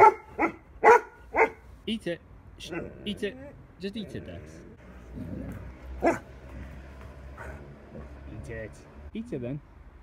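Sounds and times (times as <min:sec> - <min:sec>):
dog barking: 0:00.0 - 0:01.6, 0:06.0 - 0:06.3.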